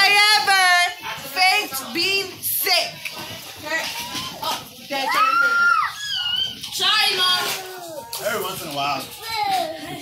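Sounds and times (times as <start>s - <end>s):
children's voices: 9.0s - 10.0s.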